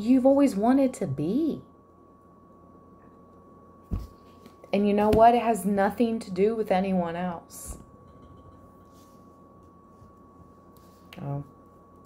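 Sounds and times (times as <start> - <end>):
faint high tone hum: 0.0 - 12.0.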